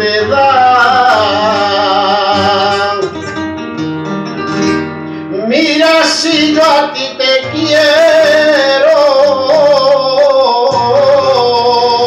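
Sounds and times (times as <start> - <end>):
flamenco guitar playing: 0.0 - 12.0.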